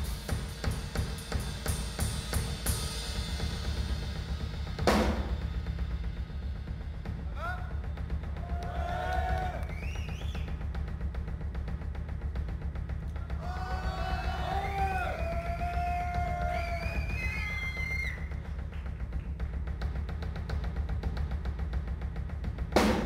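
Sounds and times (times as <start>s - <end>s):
fast drum kit: 0.0s - 23.0s
heavy steady bass: 0.0s - 23.0s.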